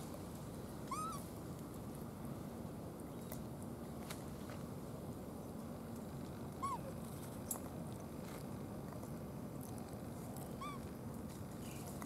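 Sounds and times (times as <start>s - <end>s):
low outdoor background: 0.0s - 12.0s
macaque high call: 0.9s - 1.3s, 6.6s - 6.9s.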